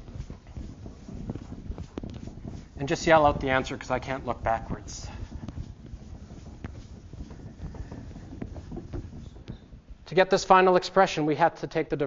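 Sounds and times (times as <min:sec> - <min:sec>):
eraser rubbing on blackboard: 0:00.0 - 0:11.0.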